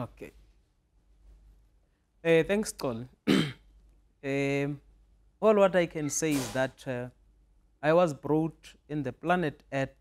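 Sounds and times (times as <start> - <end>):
man clearing throat: 3.2 - 3.7.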